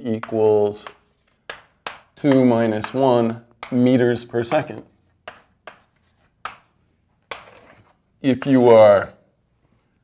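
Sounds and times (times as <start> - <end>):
scratchy writing on a board: 0.1 - 8.8.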